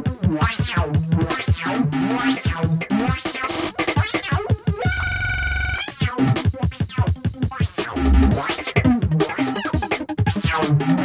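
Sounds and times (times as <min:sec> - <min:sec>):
fast chopped breakbeat: 0:00.0 - 0:11.0
deep bass note: 0:08.0 - 0:08.4.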